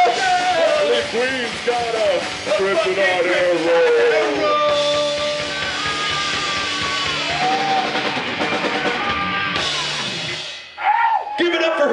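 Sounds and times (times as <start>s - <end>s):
loud shout: 0.0s - 1.1s, 3.4s - 10.2s, 10.8s - 11.9s
rock band playing: 0.0s - 11.9s.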